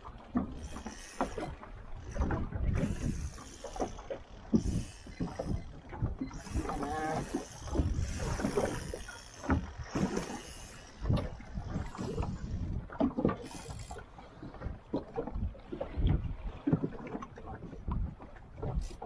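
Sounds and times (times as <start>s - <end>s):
waves slapping boat hull: 0.0s - 19.0s.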